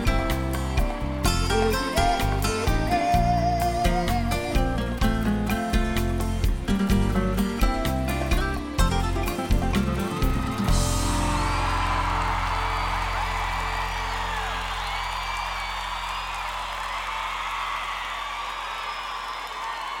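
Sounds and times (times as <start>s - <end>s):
audience cheering and whistling: 0.0s - 5.4s, 10.0s - 20.0s
live band final chord: 6.0s - 14.6s.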